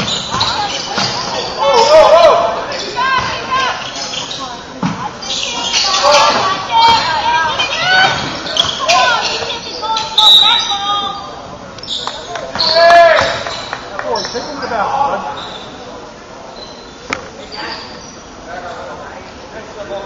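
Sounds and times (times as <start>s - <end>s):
sneakers squeaking: 0.0s - 19.1s
voices echoing in gym: 0.0s - 20.0s.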